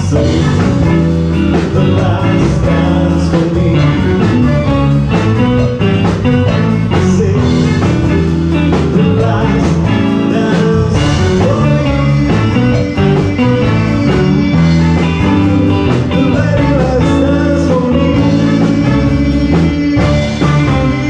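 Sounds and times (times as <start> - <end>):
live band playing pop: 0.0 - 21.0
man singing: 0.0 - 21.0.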